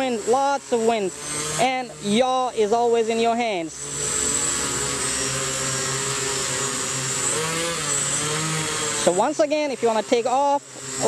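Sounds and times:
drone motors and propellers: 0:00.0 - 0:11.0.

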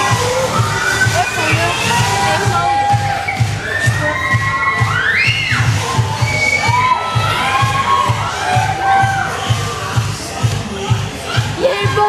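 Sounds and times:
audience shouting and cheering: 0:00.0 - 0:12.0
dance music with bass beat: 0:00.0 - 0:12.0.

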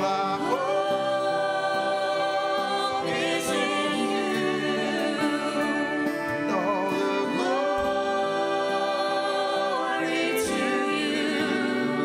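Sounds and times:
acoustic guitar: 0:00.0 - 0:12.0
group singing slow song: 0:00.0 - 0:12.0
violin: 0:00.0 - 0:12.0.

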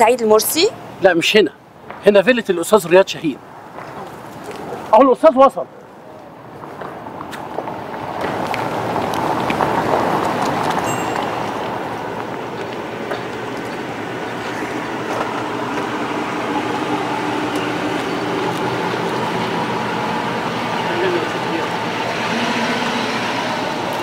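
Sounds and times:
car driving on stone road: 0:03.4 - 0:24.0.

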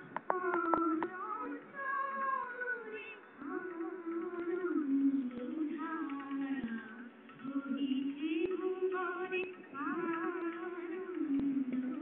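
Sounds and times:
person singing long held notes: 0:00.2 - 0:12.0.

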